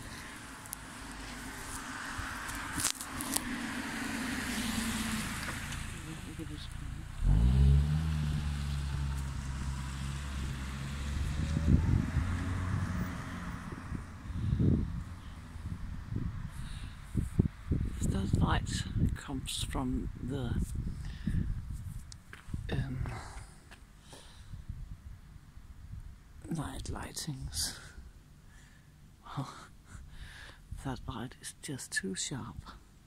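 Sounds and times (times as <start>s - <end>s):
vehicle engine humming: 0.0s - 16.6s.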